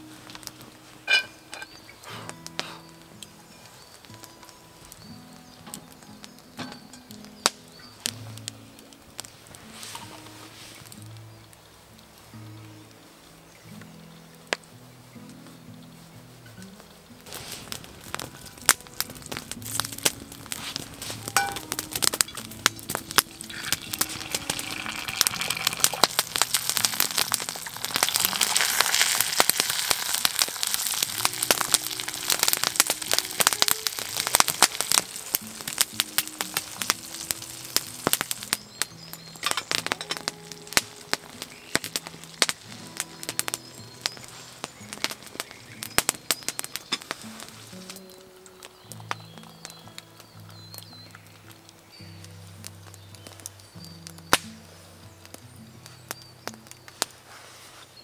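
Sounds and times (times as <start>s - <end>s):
soft background music: 0.0s - 57.8s
log fire crackling and popping: 0.0s - 58.0s
egg sizzling in a skillet: 17.3s - 49.7s.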